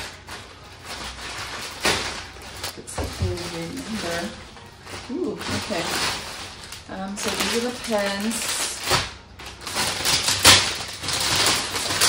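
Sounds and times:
plastic packaging crinkling: 0.0 - 12.0
sharp plastic crackles: 0.0 - 12.0.

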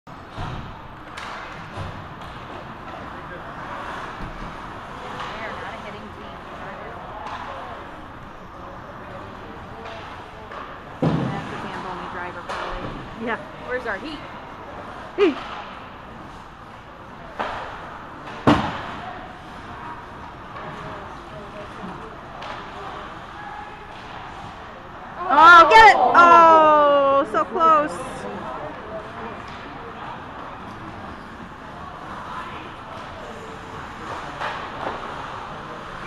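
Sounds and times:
hockey puck impacts: 0.1 - 5.6, 7.2 - 13.1, 14.8 - 24.8, 29.4 - 36.0
steady background noise: 0.1 - 36.0
spectators chattering: 2.5 - 36.0.

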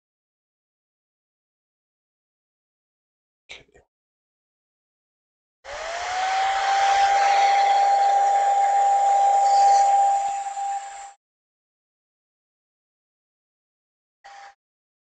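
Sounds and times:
electric dryer motor whine: 5.7 - 11.2.

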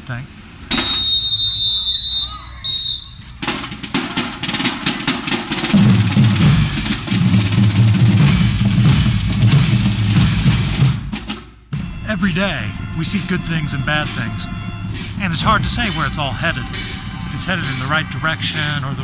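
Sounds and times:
drums: 0.0 - 19.0
horns and low brass: 0.0 - 19.0
high whistle-like tone: 0.7 - 3.2.

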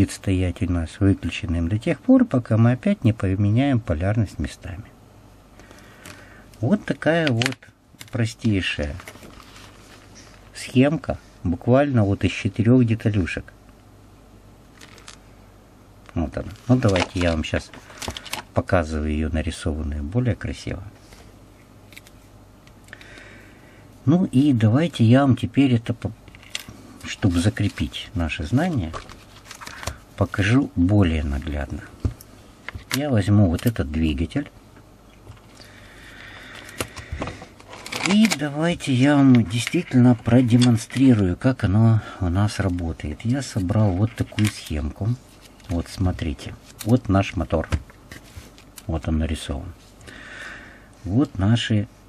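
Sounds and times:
steady low hum: 0.0 - 52.0.

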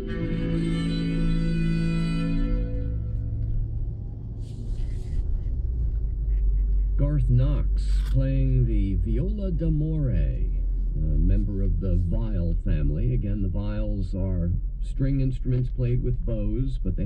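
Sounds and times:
bowed string chord ringing: 0.0 - 3.8
low steady hum: 0.0 - 17.0
man's voice: 7.0 - 17.0.

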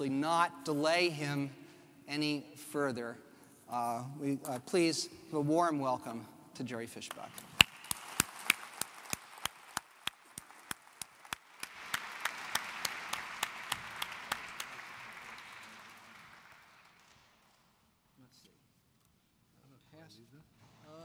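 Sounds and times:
audience applauding: 7.1 - 17.6
close hand clapping: 7.1 - 17.7.

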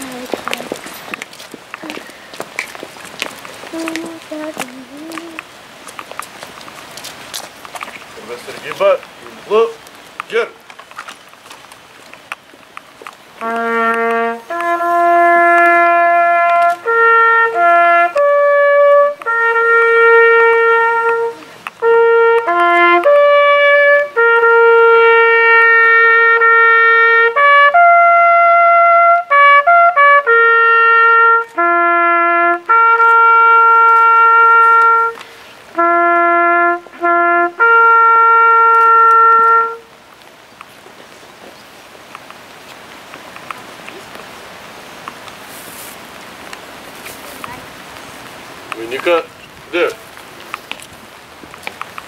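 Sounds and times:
solo trumpet call: 13.4 - 39.9.

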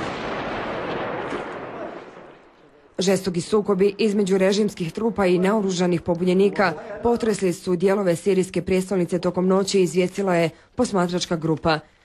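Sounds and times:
heavy gunfire: 0.0 - 2.5
sharp gunshot cracks: 0.0 - 2.5.

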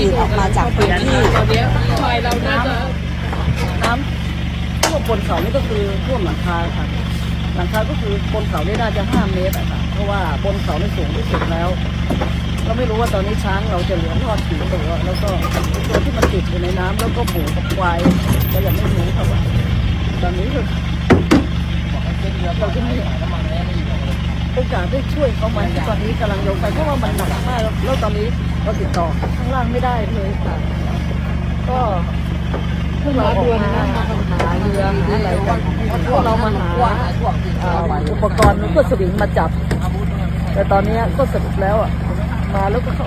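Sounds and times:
woman speaking: 0.0 - 3.0
speech: 0.0 - 4.2, 4.8 - 12.0, 12.6 - 20.9, 21.8 - 43.0
vehicle engine idling: 0.0 - 43.0.

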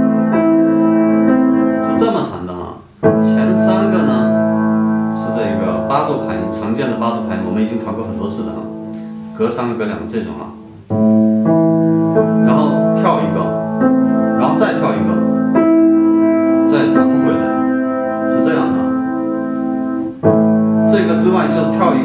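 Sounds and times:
piano arpeggios: 0.0 - 22.0.

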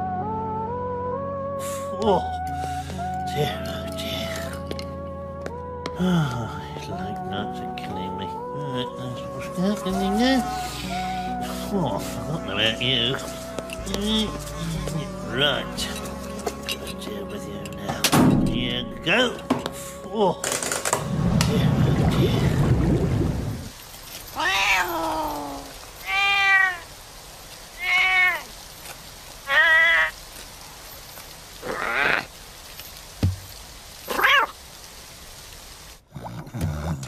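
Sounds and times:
cartoon background music: 0.0 - 22.6
man's non-verbal vocal sounds: 5.9 - 7.1, 8.3 - 16.1, 36.1 - 37.0
cartoon cat meowing: 24.4 - 26.8, 27.8 - 28.5, 29.5 - 30.2, 34.1 - 34.5.

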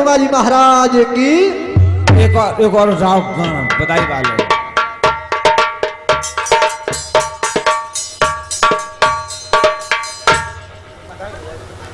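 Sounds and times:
low drum beat: 1.8 - 11.0
bell-like metal percussion strokes: 1.8 - 11.2.

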